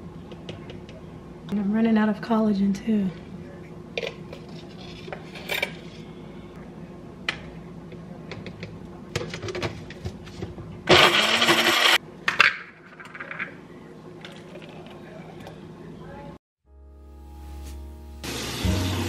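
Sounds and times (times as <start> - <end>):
blender running: 10.9 - 12.0, 18.2 - 19.0.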